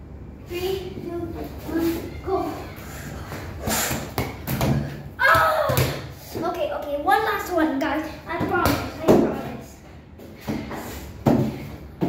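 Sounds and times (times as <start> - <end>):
children's voices: 0.5 - 3.5
child shouting: 1.7 - 2.8, 5.2 - 6.0.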